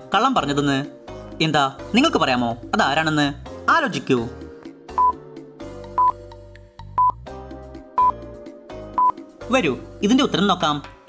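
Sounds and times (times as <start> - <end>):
background music: 0.0 - 11.0
timer beeping: 5.0 - 5.2, 5.9 - 6.2, 7.0 - 7.2, 8.0 - 8.2, 9.0 - 9.2.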